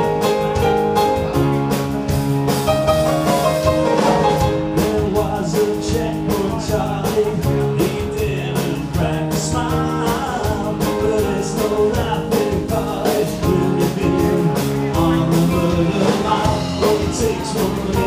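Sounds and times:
rock band playing: 0:00.0 - 0:18.0
man singing into a microphone: 0:04.5 - 0:18.0.

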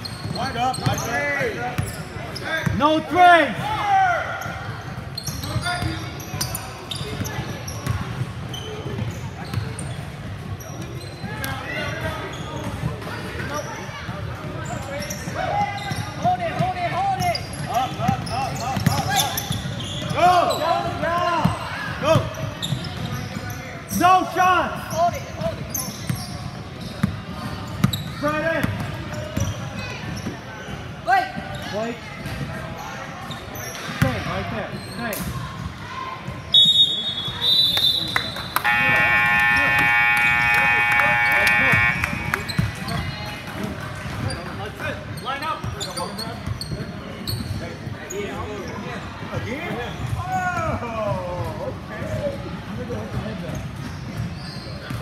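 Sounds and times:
voices of players and spectators: 0:00.0 - 0:55.0
referee's whistle: 0:36.5 - 0:43.0
scoreboard buzzer: 0:38.6 - 0:42.7
basketball dribbling on court: 0:38.6 - 0:44.3.

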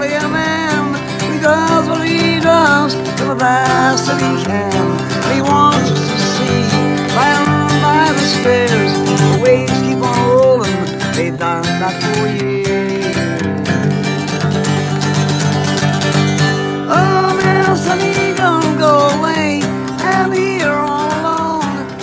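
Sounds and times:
man singing: 0:00.0 - 0:16.2, 0:16.8 - 0:22.0
acoustic guitar strumming: 0:00.0 - 0:22.0.

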